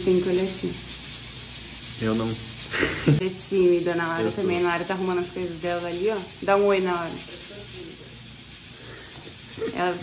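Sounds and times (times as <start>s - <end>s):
woman speaking: 0.0s - 0.8s, 3.2s - 7.4s, 9.6s - 10.0s
steady hiss: 0.0s - 10.0s.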